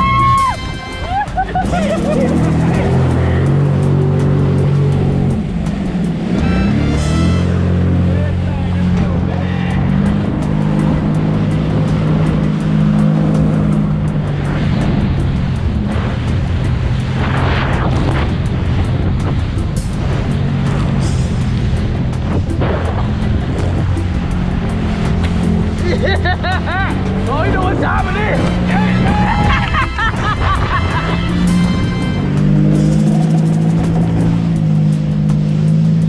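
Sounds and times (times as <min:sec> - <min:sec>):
jet ski engine running: 0:00.0 - 0:36.0
water rushing and spraying: 0:00.0 - 0:36.0.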